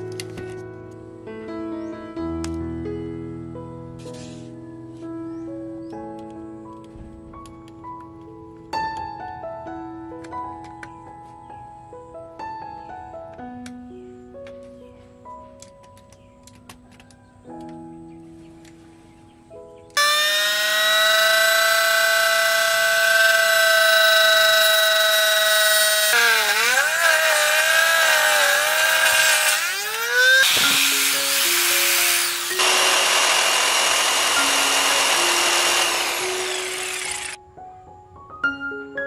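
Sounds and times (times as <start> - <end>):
saw cutting wood: 20.0 - 37.4
table saw whining: 20.0 - 37.4.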